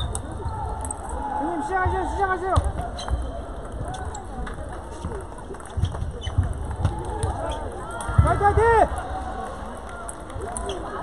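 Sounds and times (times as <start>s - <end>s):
voices in a sports hall: 0.0s - 11.0s.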